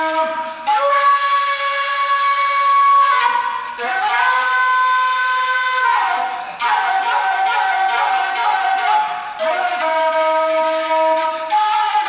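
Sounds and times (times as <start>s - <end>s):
flute playing long sliding notes: 0.0s - 12.0s.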